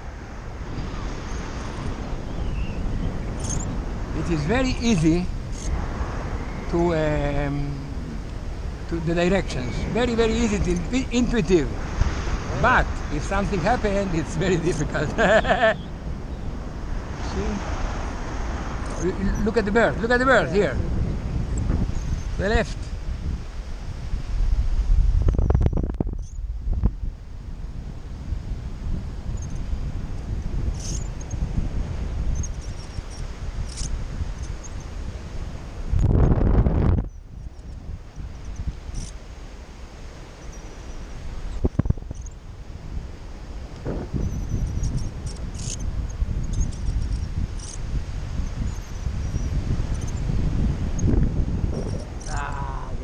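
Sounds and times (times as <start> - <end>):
wind rushing over microphone: 0.0 - 53.0.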